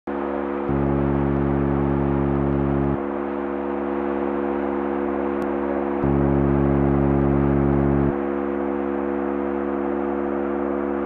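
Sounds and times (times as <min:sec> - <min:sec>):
modular synthesizer droning chord: 0:00.1 - 0:11.0.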